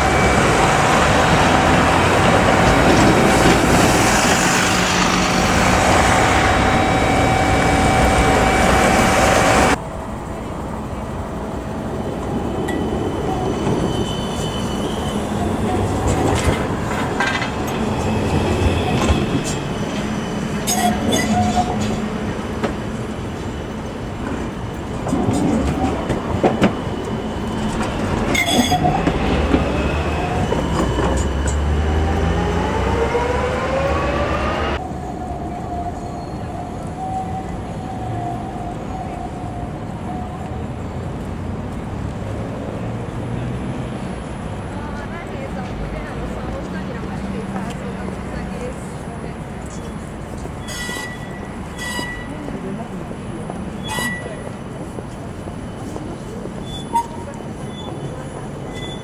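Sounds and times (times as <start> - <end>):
tram wheels clicking on rails: 0.0 - 33.0, 44.0 - 59.0
tram motors whining: 0.0 - 41.8
bus passing: 0.0 - 59.0
road traffic: 0.0 - 59.0.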